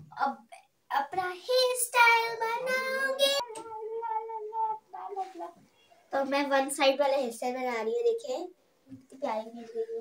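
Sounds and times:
young girl singing: 0.0s - 6.5s.

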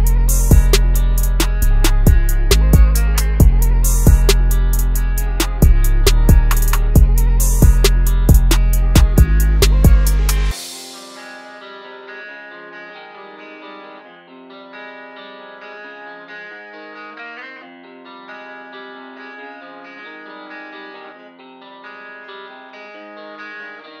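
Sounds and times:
plucked processed guitar melody: 0.0s - 24.0s.

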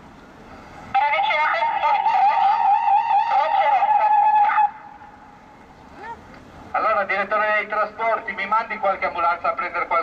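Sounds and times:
warbling emergency siren: 1.0s - 5.0s.

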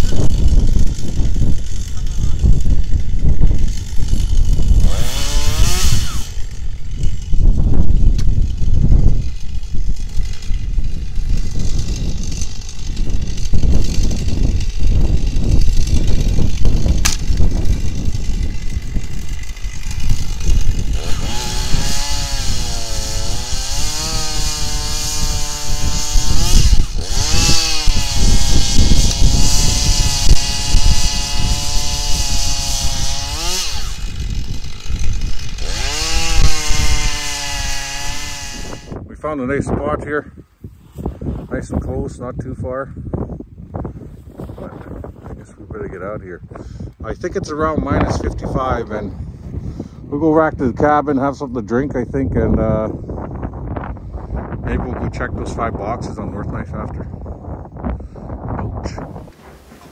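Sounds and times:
chainsaw cutting wood: 0.0s - 39.0s, 58.9s - 59.9s.

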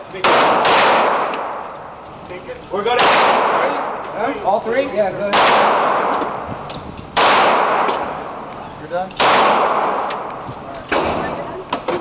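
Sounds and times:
pistol shots echoing: 0.2s - 2.2s, 2.8s - 4.4s, 5.2s - 6.5s, 7.1s - 11.5s.

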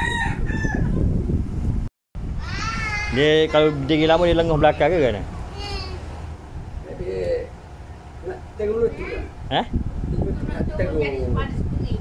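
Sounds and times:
rooster crowing: 0.0s - 1.0s.

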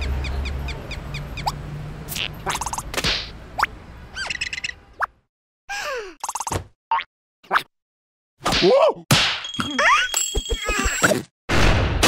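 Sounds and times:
cartoon sound effects: 2.1s - 2.8s.

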